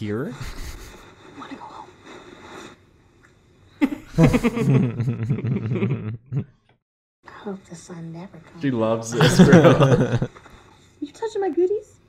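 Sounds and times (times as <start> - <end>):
men speaking: 0.0 - 0.8, 8.6 - 10.3
men laughing: 0.4 - 1.0, 3.8 - 6.5, 9.1 - 10.3.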